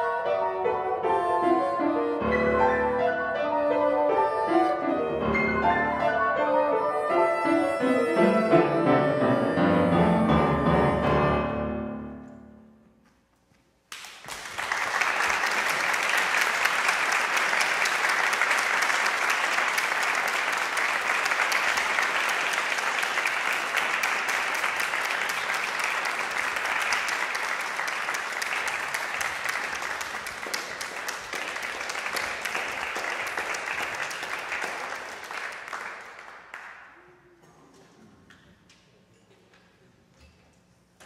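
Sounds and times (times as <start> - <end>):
audience applauding: 13.9 - 37.0.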